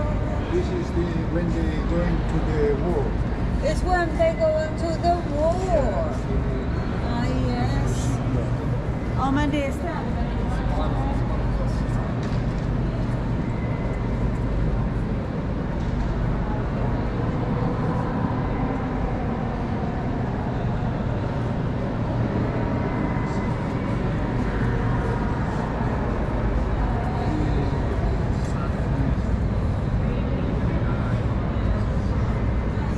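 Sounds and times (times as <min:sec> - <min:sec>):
people's voices: 0:00.0 - 0:13.3.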